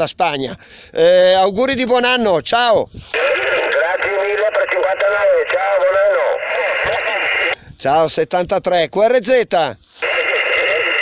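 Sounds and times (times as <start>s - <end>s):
person speaking over radio speaker: 3.1s - 7.6s, 10.0s - 11.0s.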